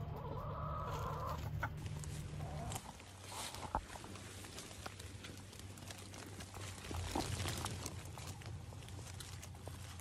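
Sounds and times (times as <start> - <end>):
chicken calling: 0.0 - 3.0.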